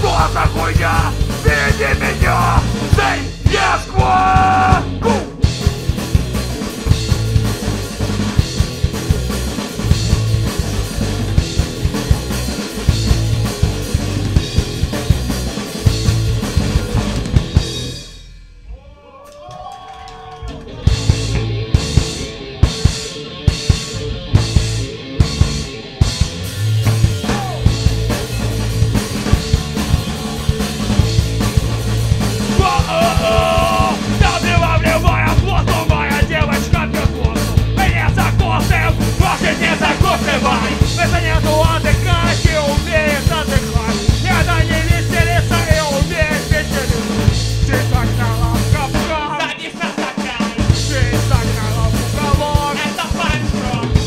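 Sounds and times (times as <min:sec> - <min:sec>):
person shouting singing: 0:00.0 - 0:05.4, 0:18.7 - 0:20.9, 0:27.2 - 0:27.7, 0:32.5 - 0:54.0
drum hits: 0:00.0 - 0:18.3, 0:20.9 - 0:54.0
punk band playing live: 0:00.0 - 0:18.8, 0:19.5 - 0:54.0.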